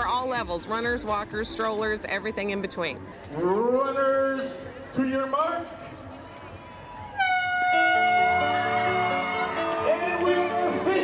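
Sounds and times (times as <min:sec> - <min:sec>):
faint crowd hubbub: 0:00.0 - 0:11.0
music: 0:00.0 - 0:11.0
air horn blast: 0:07.2 - 0:10.0.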